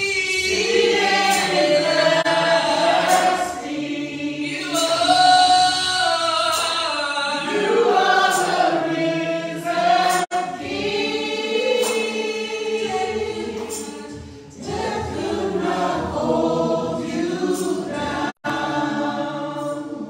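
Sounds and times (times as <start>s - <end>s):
group singing gospel in harmony: 0.0s - 20.0s.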